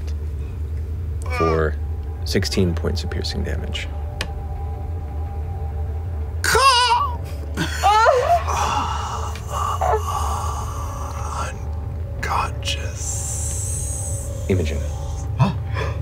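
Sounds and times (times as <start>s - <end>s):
rising wavering cry: 1.2s - 1.8s, 6.2s - 15.8s
high wavering wail: 6.4s - 11.6s.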